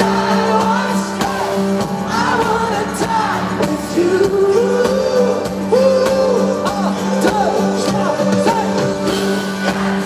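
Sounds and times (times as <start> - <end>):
man singing into microphone: 0.0 - 9.2
pop-rock band playing: 0.0 - 10.0.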